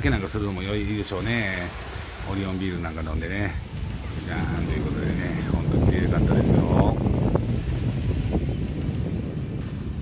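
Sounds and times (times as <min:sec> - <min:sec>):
small waves on beach: 0:00.0 - 0:10.0
wind blowing across microphone: 0:00.0 - 0:10.0.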